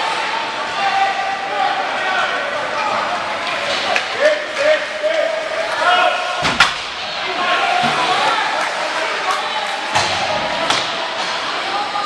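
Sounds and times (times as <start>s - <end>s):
spectators' voices: 0.0s - 12.0s
bang against rink boards: 6.4s - 6.9s, 9.9s - 11.3s.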